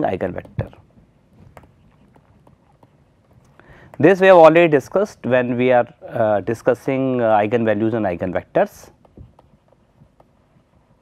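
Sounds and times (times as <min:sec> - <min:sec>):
pen tapping while handwriting: 0:00.2 - 0:04.2, 0:08.9 - 0:11.0.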